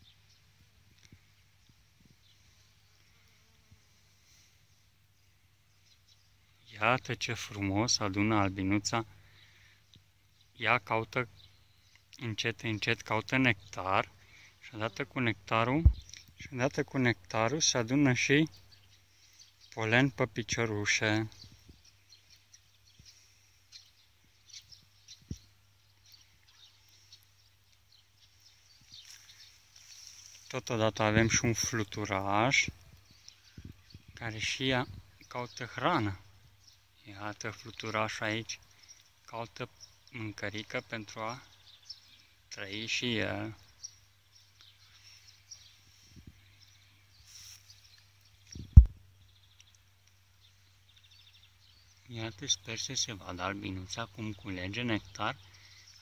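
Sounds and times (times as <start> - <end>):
faint bird chirps: 13.4 - 56.0
dull low thump: 15.8 - 16.0, 48.6 - 49.0
soft low thump: 15.8 - 16.0.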